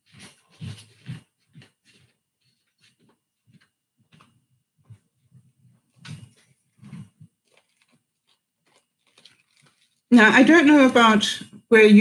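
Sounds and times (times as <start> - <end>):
headset microphone handling bumps: 0.0 - 9.8.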